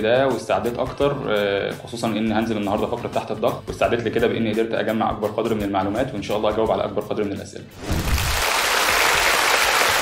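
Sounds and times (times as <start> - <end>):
studio audience applauding: 7.9 - 10.0.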